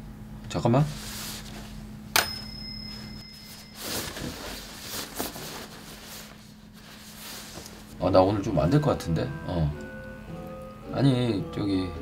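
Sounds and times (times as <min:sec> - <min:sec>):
bright chime ringing: 0:02.2 - 0:04.1.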